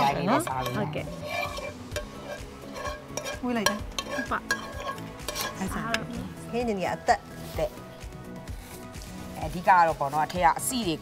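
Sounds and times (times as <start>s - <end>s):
metal utensil scraping frying pan: 0.0s - 6.1s.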